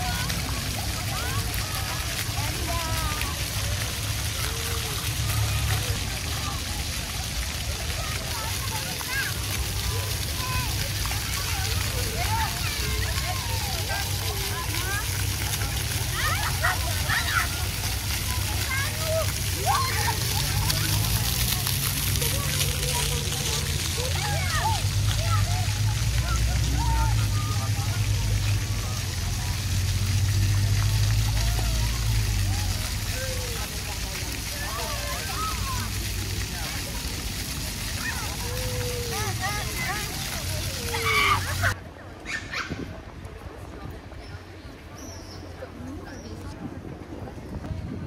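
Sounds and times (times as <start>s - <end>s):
children calling and shouting: 0.0s - 46.7s
fountain jets splashing on paving: 0.0s - 48.0s.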